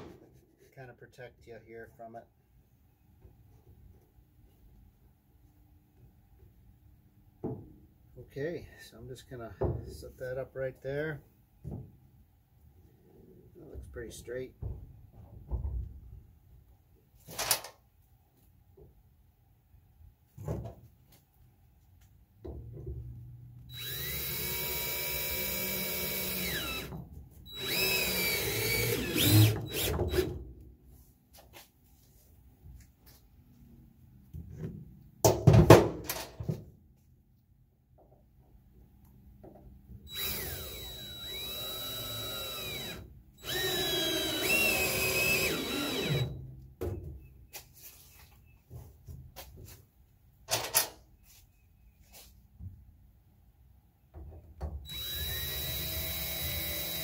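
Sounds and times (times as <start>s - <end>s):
cordless drill driving screws: 23.7s - 26.9s, 27.5s - 30.3s, 40.1s - 46.4s, 54.9s - 57.0s.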